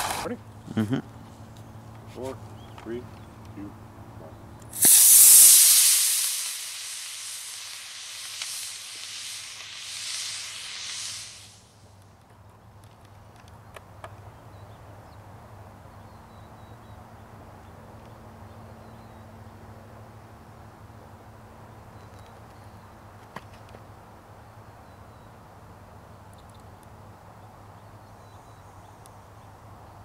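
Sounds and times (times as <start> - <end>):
rocket motor hissing: 4.7 - 11.8.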